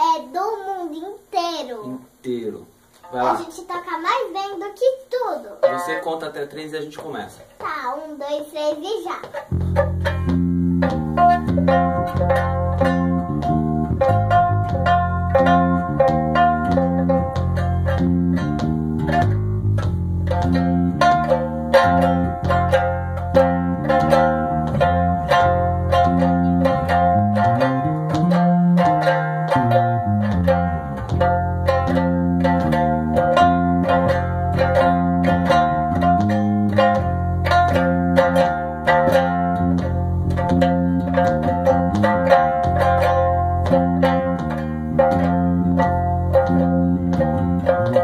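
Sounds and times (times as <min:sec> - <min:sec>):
small string instrument strummed: 0:02.9 - 0:04.6, 0:05.5 - 0:48.0
electric bass guitar: 0:09.3 - 0:48.0.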